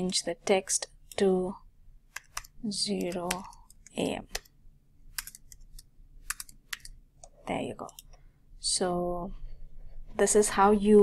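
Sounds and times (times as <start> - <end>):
keyboard typing clicks: 2.1 - 4.5, 5.1 - 8.1.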